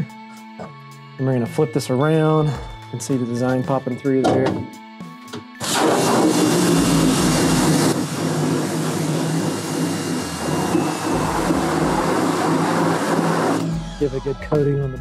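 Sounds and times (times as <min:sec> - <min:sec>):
water jet spraying: 0:05.6 - 0:13.6
pressure washer motor humming: 0:05.6 - 0:14.0.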